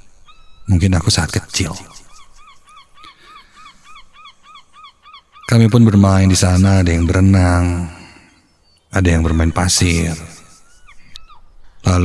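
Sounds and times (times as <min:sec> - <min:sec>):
bird calling rapidly: 0:00.2 - 0:11.9.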